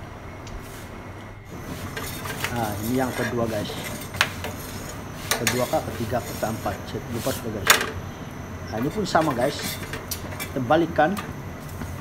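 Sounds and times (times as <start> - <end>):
metal tongs scraping griddle: 1.6 - 8.0, 8.7 - 11.8.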